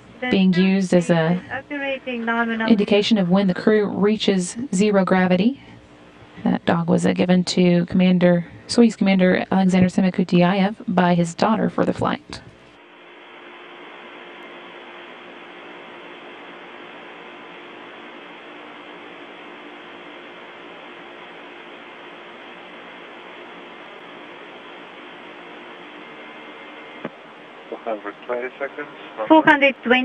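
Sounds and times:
radio channel hiss: 0.0s - 7.1s, 10.7s - 30.0s
faint steady hum: 0.0s - 30.0s.

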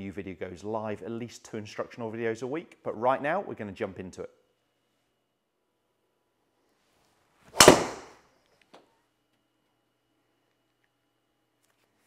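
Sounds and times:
golf driver striking ball: 7.6s - 8.1s.

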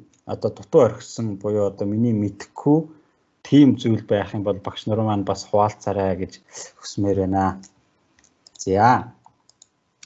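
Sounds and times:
man speaking: 0.0s - 7.7s, 8.6s - 9.2s
faint clicks: 7.6s - 9.8s.

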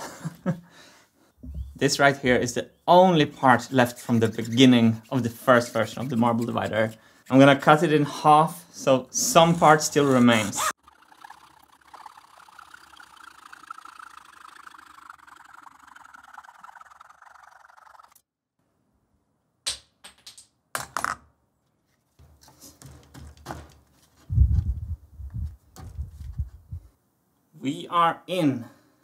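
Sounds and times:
wood scraping rub: 3.4s - 8.0s, 9.2s - 10.8s.

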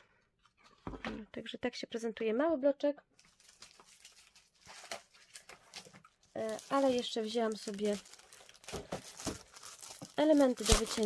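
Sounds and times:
paper sheets rustling: 3.2s - 11.0s.

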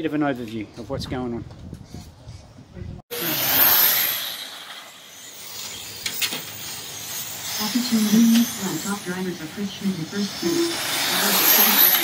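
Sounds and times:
radio-controlled car passing: 3.1s - 12.0s.

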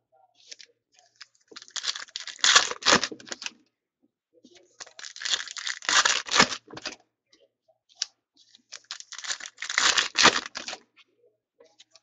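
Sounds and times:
foil wrappers tearing and crinkling: 1.6s - 3.5s, 4.8s - 6.7s, 8.7s - 10.8s.

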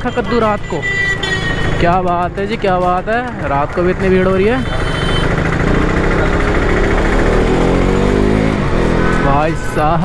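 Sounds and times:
wind and road noise: 0.0s - 10.0s
motorcycle engine accelerating: 1.2s - 10.0s.

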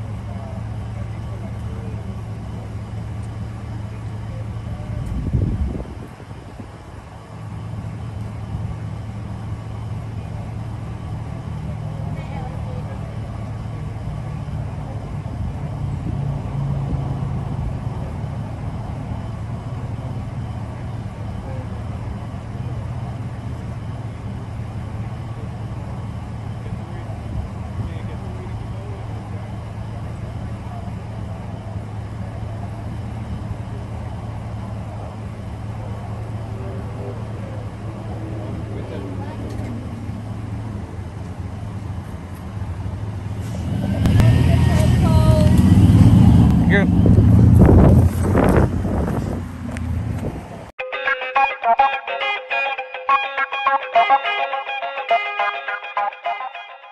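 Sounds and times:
faint voices: 0.0s - 5.4s, 10.0s - 16.2s, 20.5s - 34.2s, 34.9s - 42.0s, 42.7s - 47.0s, 50.9s - 56.9s
truck engine idling: 0.0s - 56.9s
raised voice: 50.8s - 56.9s.

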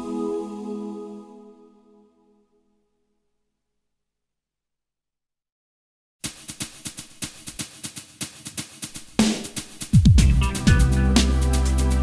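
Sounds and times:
drum kit playing quick strokes: 6.2s - 12.0s.

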